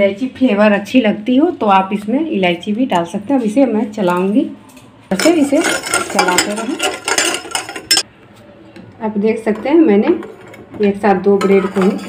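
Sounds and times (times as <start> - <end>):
metal spoon scraping saucepan: 5.1 - 8.1, 11.3 - 12.0.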